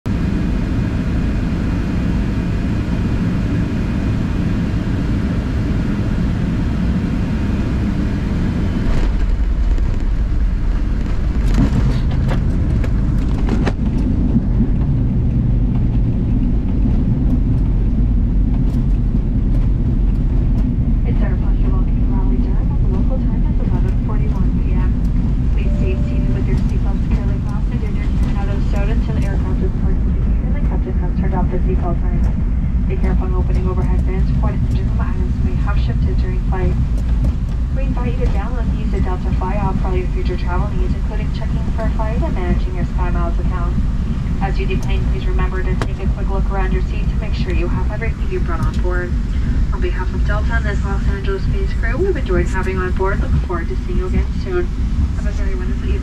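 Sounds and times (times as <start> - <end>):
airflow and engine noise in cabin: 0.1 - 56.0
wheels rumbling on runway: 0.1 - 56.0.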